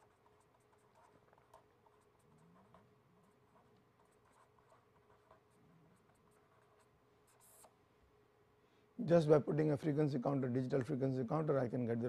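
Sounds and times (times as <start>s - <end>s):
pen scratching on paper: 0.0s - 7.7s
faint steady hum: 0.0s - 12.0s.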